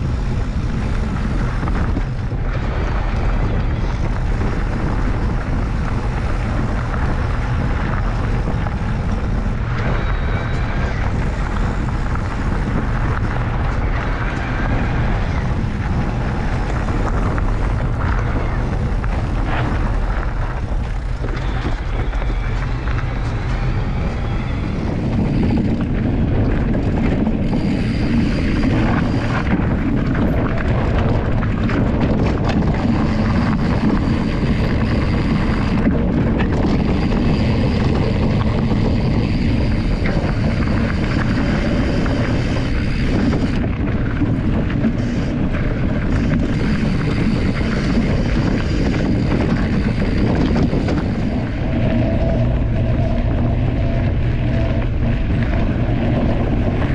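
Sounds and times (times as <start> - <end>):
tyre rumbling over gravel: 0.0 - 56.9
wind buffeting microphone: 0.0 - 56.9.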